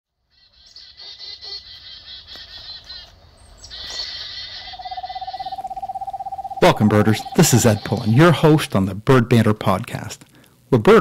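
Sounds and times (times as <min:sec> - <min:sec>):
high chirping bird calls: 0:00.3 - 0:08.4
low pulsing trill: 0:04.8 - 0:08.4.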